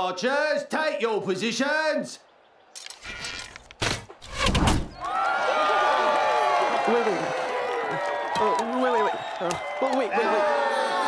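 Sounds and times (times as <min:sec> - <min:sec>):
crowd cheering and shouting: 0:04.9 - 0:11.0.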